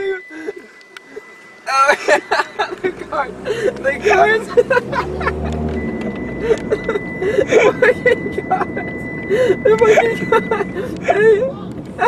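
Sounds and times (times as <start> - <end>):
people laughing and calling out: 0.0 - 5.7
road and engine noise: 0.0 - 12.0.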